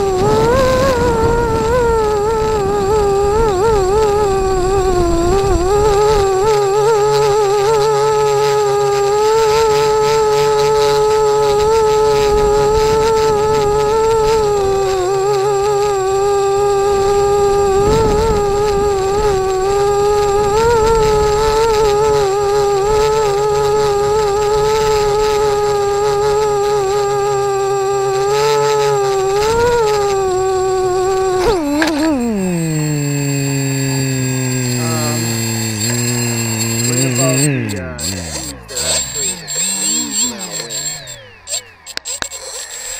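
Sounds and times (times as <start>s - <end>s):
drone propellers buzzing: 0.0s - 42.9s.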